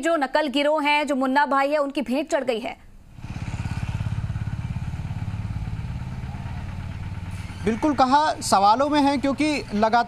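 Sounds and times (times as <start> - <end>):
engine idling: 3.1 - 10.0.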